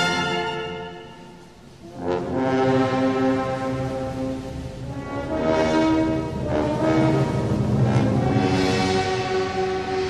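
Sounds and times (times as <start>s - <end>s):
brass band sustained chord: 0.0s - 10.0s.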